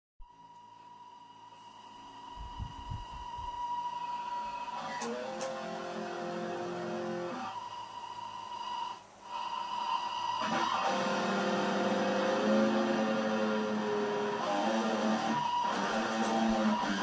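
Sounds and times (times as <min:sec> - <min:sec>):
electric guitar lead lines: 0:02.3 - 0:07.7, 0:09.3 - 0:17.0.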